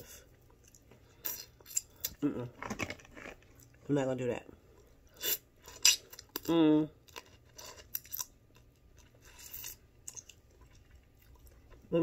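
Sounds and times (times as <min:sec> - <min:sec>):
person chewing: 0:00.0 - 0:02.3, 0:04.8 - 0:11.9.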